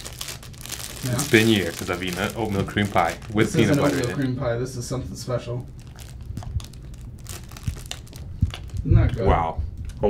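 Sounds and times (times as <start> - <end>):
plastic wrapper crinkling: 0.0 - 4.3, 5.6 - 9.2.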